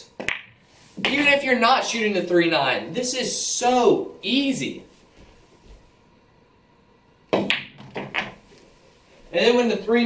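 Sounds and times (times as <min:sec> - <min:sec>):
balls knocking cushion: 0:07.3 - 0:08.4
cue tip striking ball: 0:07.3 - 0:08.4
billiard balls clacking: 0:07.3 - 0:08.5.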